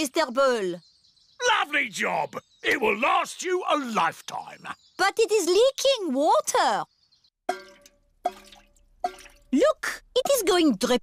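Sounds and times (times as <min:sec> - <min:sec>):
cartoon water drips: 0:07.5 - 0:11.0.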